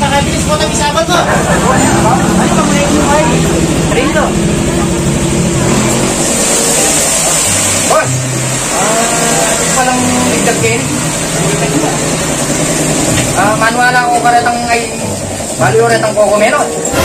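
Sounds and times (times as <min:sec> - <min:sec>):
men talking: 0:00.0 - 0:05.8, 0:07.7 - 0:17.0
vehicle engine running: 0:00.0 - 0:16.2.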